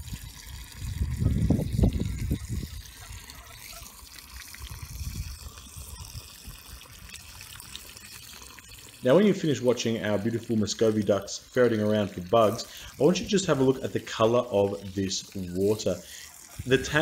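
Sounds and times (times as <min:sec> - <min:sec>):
hose water trickling into tub: 0:00.0 - 0:17.0.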